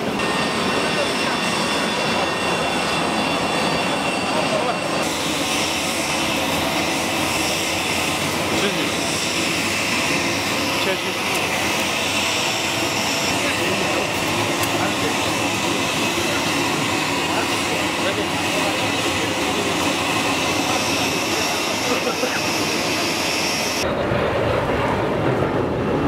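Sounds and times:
jet engine whine and rush: 0:00.0 - 0:26.0.

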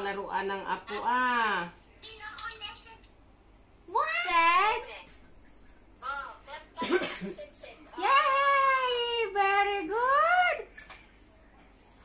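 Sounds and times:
cough: 0:06.8 - 0:07.3.

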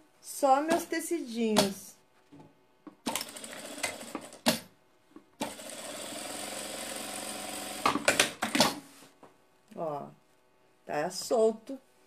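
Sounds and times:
sewing machine running: 0:03.1 - 0:04.5, 0:05.4 - 0:08.5.

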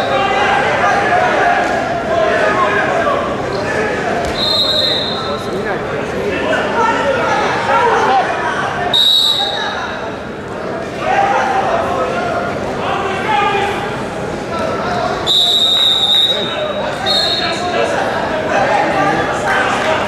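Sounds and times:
voices in a large hall: 0:00.0 - 0:20.0
referee's whistle blasts: 0:04.3 - 0:05.3, 0:08.9 - 0:09.7, 0:15.2 - 0:17.6.

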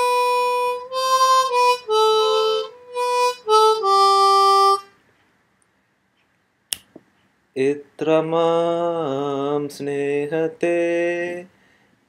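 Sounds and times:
harmonica note: 0:00.0 - 0:05.0.

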